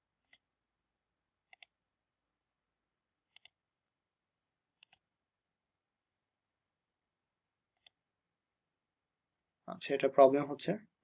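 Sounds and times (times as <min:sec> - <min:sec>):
computer mouse clicks: 0:00.2 - 0:00.4, 0:01.5 - 0:01.8, 0:03.3 - 0:03.6, 0:04.8 - 0:05.1, 0:07.7 - 0:08.0.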